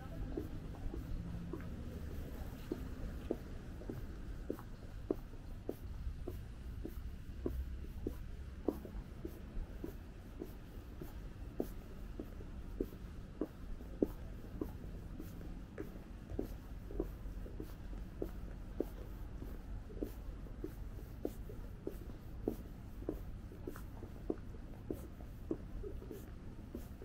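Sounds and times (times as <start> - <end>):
distant city traffic rumble: 0.0 - 27.0
footsteps on stone sidewalk: 0.0 - 27.0.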